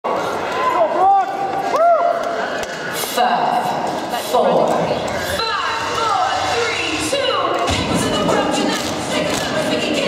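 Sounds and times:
dense background chatter: 0.0 - 8.6
people talking in large hall: 0.0 - 10.0.

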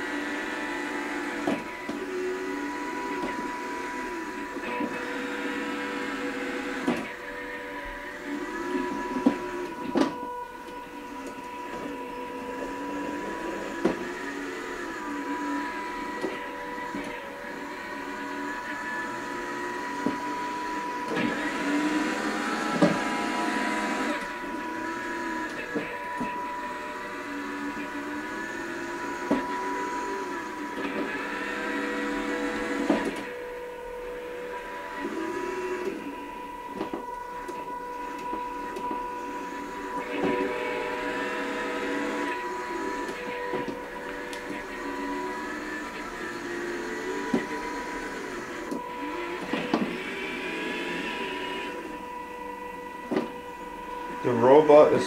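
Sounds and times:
high whine: 0.0 - 55.0
robot gear motors whirring: 8.0 - 55.0.

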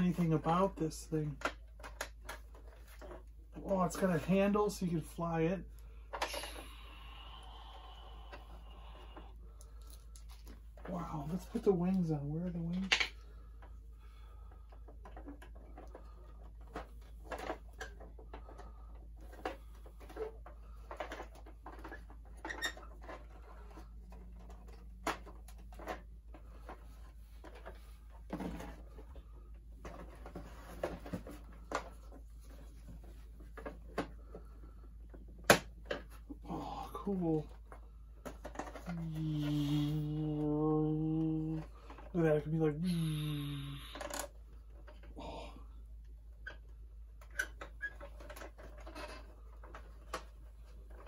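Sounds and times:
man humming: 38.9 - 41.7.

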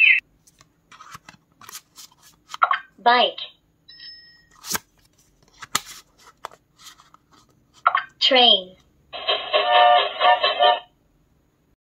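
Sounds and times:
card scraping and clicking: 0.5 - 2.6, 4.5 - 7.6.

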